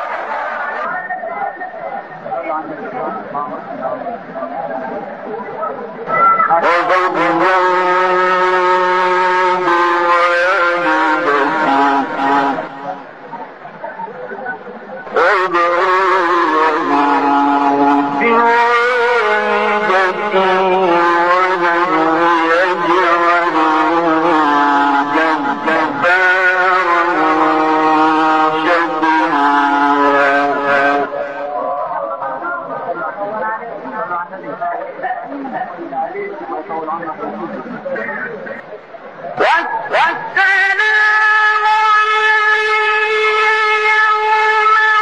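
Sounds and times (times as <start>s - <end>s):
man reciting in melodic chant: 6.2s - 13.1s, 14.1s - 38.7s, 39.3s - 45.0s.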